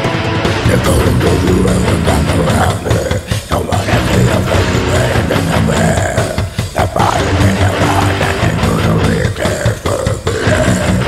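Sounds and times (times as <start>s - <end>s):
dense drum track: 0.0s - 11.0s
heavy metal guitar riffs: 0.0s - 11.0s.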